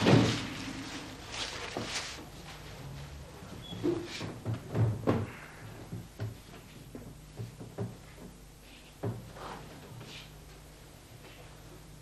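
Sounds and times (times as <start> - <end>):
knocks and thumps: 0.0 - 0.9, 3.8 - 8.4.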